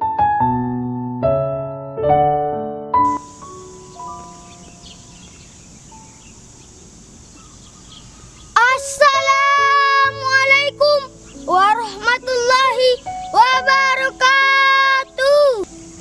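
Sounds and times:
soft instrumental notes: 0.0 - 6.9, 8.6 - 16.0
boy chanting melodically: 8.5 - 15.8.

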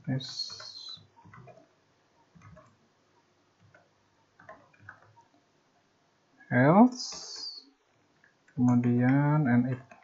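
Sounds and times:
faint keyboard typing: 0.0 - 5.9, 6.8 - 10.0.

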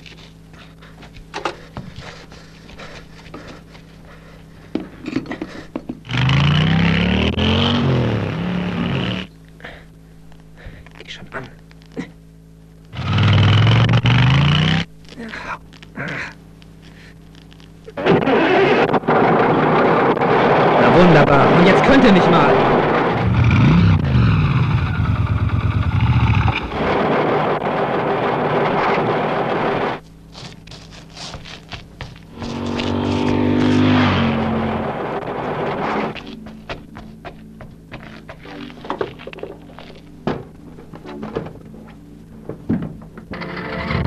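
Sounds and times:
vehicle engine starting and running: 6.0 - 9.3, 12.9 - 14.9, 17.9 - 30.0, 32.1 - 44.0
vehicle engine passing by: 32.3 - 36.2.

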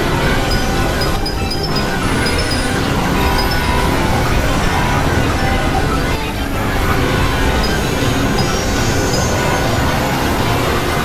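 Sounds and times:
dense synthesizer drone: 0.0 - 11.0.

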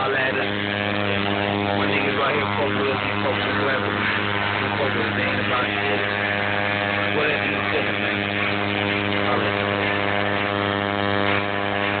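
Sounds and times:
tattoo machine buzzing: 0.0 - 12.0.

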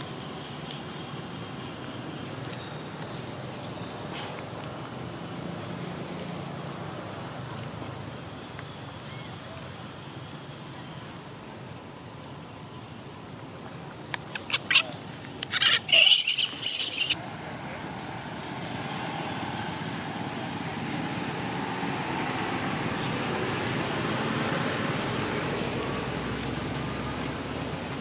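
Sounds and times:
monkey squealing: 14.3 - 17.2.

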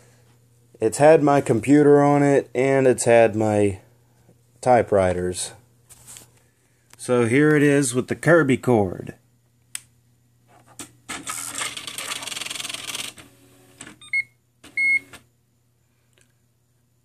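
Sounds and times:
typewriter mechanical whirring: 11.1 - 14.0
typewriter power click: 11.1 - 14.0.

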